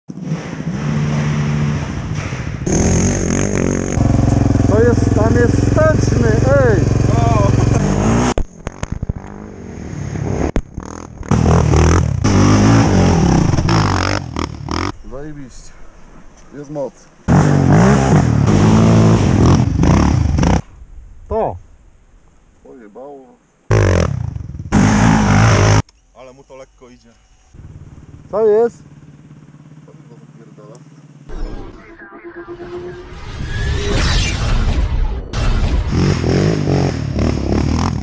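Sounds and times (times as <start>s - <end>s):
quad engine revving: 2.6s - 14.9s, 17.3s - 20.6s, 23.7s - 25.8s, 35.9s - 38.0s
quad bike engine running: 2.7s - 9.6s, 10.6s - 14.9s, 27.6s - 31.3s.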